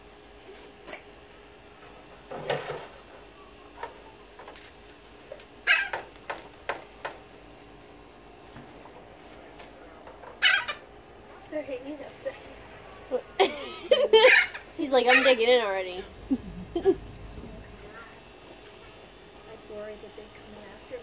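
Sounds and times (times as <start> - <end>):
parrots squawking: 5.6 - 6.1, 10.3 - 10.9, 13.9 - 18.2.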